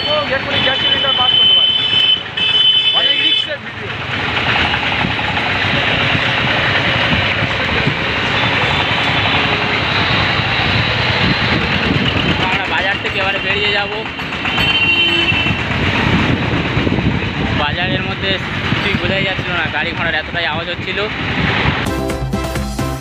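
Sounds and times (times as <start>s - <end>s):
street traffic: 0.0s - 23.0s
wind on microphone: 10.6s - 12.5s, 15.3s - 21.9s.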